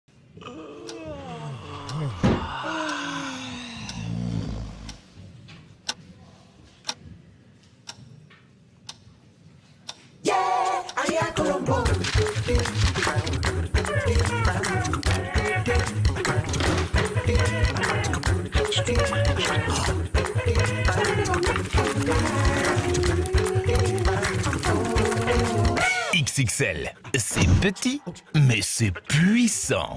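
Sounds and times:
sharp clock ticks: 7.9s - 8.1s, 8.8s - 9.0s, 20.2s - 25.8s.

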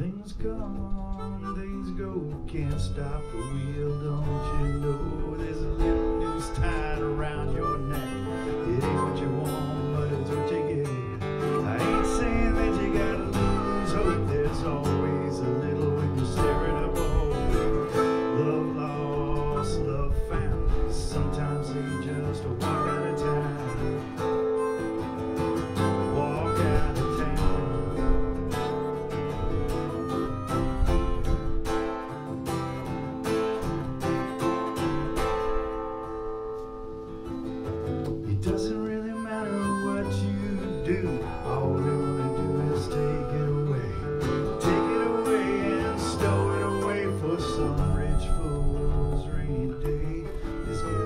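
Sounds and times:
acoustic guitar strumming: 0.0s - 51.0s
harmonica playing: 1.0s - 51.0s.

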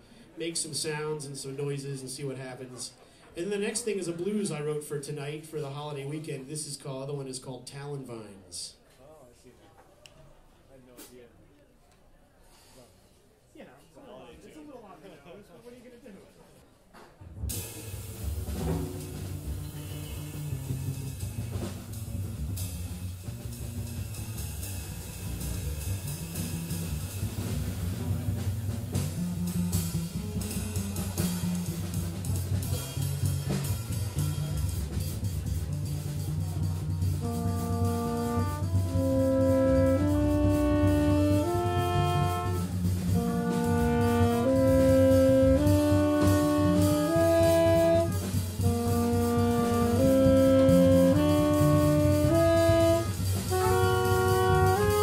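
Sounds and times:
drums: 0.0s - 8.8s, 16.3s - 55.0s
double bass: 17.5s - 55.0s
trumpet long held notes: 17.6s - 33.3s, 35.7s - 55.0s
saxophone long held notes: 17.9s - 34.6s, 35.4s - 55.0s.

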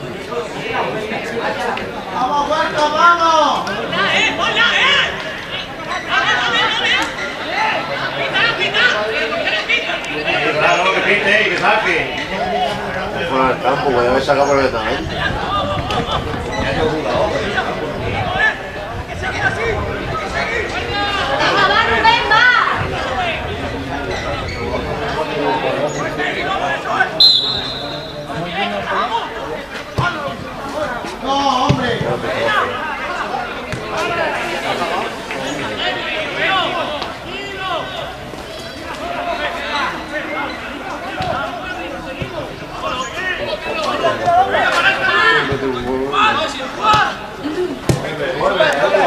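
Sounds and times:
spectators chattering: 0.0s - 49.0s
referee's whistle blast: 27.2s - 28.4s.

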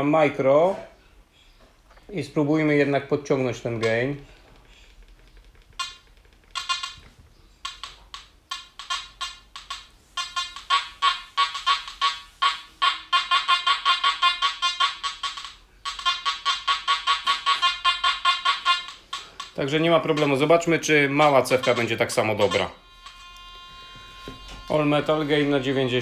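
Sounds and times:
metal detector beeps: 10.2s - 19.6s, 21.6s - 26.0s.

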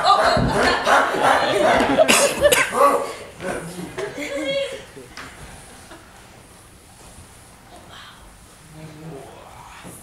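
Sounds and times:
breathy cough-like burst: 2.1s - 2.8s.

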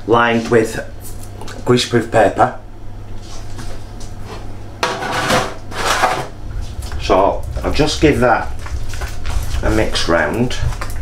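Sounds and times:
steady low hum: 0.0s - 11.0s
kitchenware rustling and clattering: 3.3s - 11.0s.

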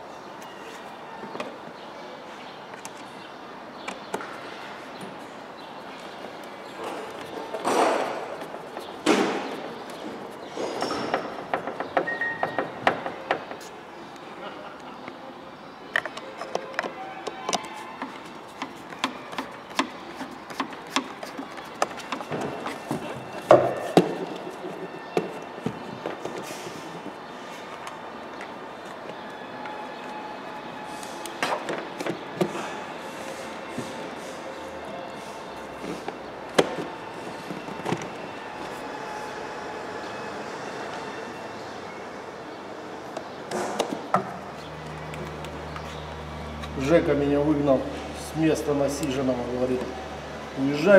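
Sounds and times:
hand tool clicking and knocking: 16.0s - 22.3s.

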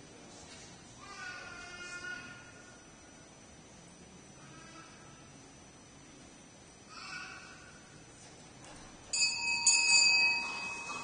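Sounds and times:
small church bell ringing: 9.1s - 11.0s.

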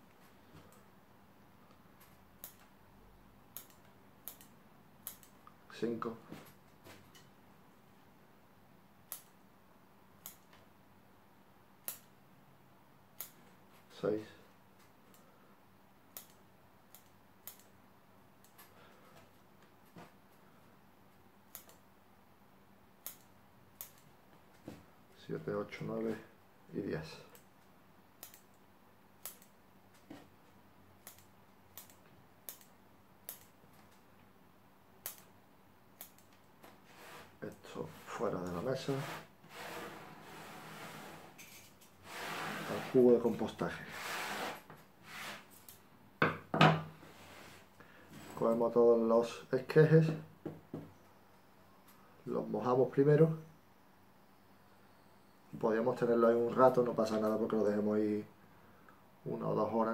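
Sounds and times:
scissors snipping: 21.5s - 21.8s, 29.2s - 29.5s, 31.0s - 32.7s.

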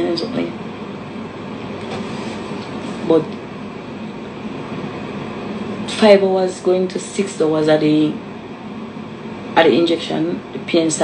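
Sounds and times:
rushing hiss background noise: 0.0s - 11.0s.

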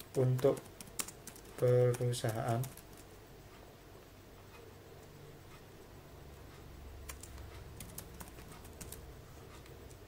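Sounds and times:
computer keyboard typing: 0.0s - 3.2s, 7.0s - 10.0s.

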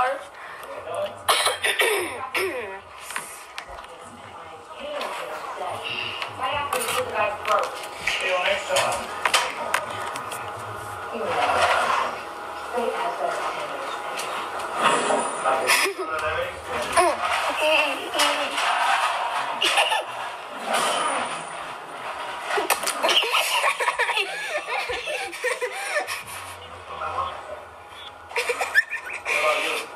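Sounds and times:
voices from video playback: 0.0s - 22.1s, 22.7s - 29.9s
person clearing throat: 1.3s - 2.7s.

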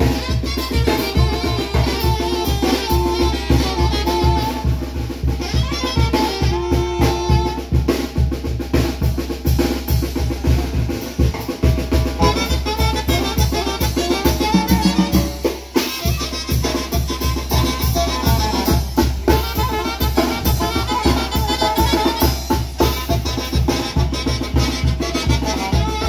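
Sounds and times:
bass drum and snare beat: 0.0s - 26.0s
brass melody: 0.0s - 26.0s.

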